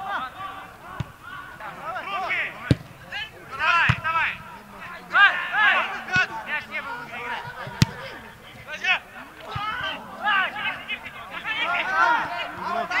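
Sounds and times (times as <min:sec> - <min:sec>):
players shouting: 0:00.0 - 0:13.0.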